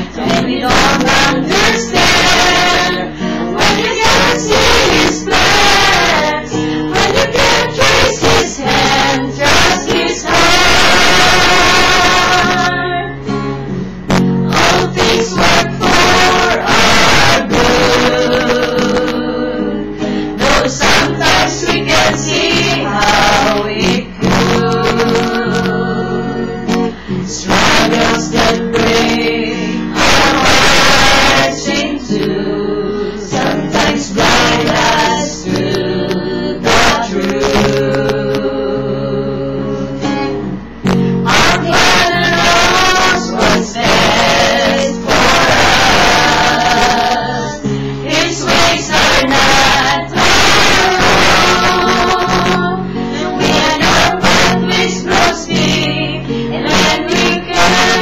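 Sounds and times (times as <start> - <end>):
acoustic guitar: 0.0 - 58.0
group singing in unison: 0.0 - 58.0.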